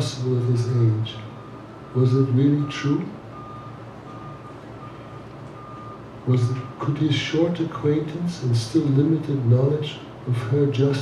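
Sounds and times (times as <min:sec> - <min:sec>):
low room hum: 0:00.0 - 0:11.0
faint repeating beep: 0:01.2 - 0:06.9.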